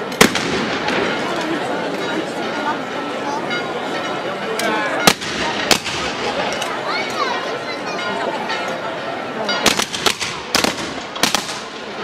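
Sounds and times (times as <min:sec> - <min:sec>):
crowd chatter: 0:00.0 - 0:12.0
shotgun blasts: 0:00.2 - 0:01.0, 0:09.7 - 0:11.8.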